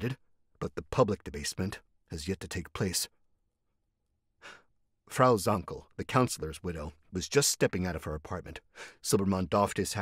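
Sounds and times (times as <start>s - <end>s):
man speaking: 0.0s - 3.2s, 5.1s - 10.0s
soft intake of breath: 8.7s - 9.0s.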